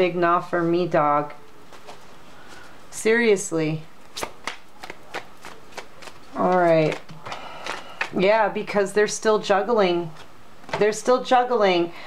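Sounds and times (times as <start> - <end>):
cards snapping while shuffled: 4.0 - 8.2.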